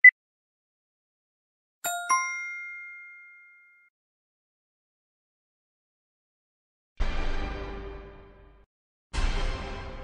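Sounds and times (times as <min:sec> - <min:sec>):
bell-like ding: 0:01.9 - 0:03.9.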